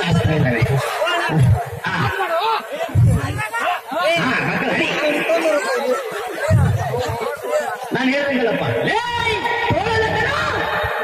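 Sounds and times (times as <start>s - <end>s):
man talking into a microphone: 0.0s - 11.0s
voices chattering: 0.0s - 11.0s.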